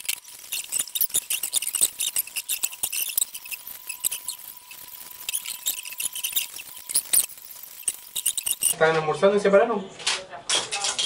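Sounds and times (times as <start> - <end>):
puzzle cube clicking and squeaking: 0.0 - 8.8.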